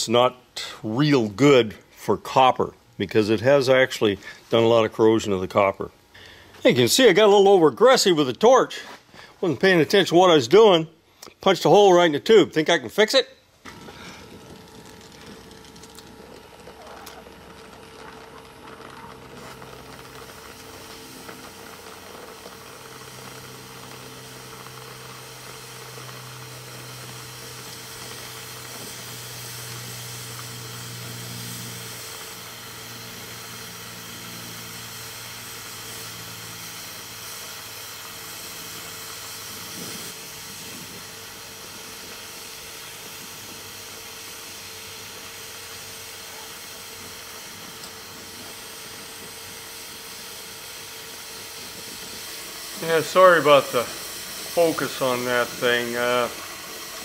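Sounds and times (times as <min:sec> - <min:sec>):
brazing torch flame hissing: 0:13.5 - 0:57.0.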